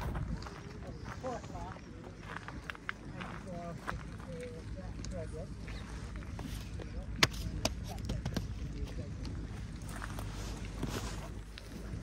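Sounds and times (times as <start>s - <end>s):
wind rumble on microphone: 0.0s - 4.5s, 5.6s - 12.0s
distant people talking: 0.0s - 12.0s.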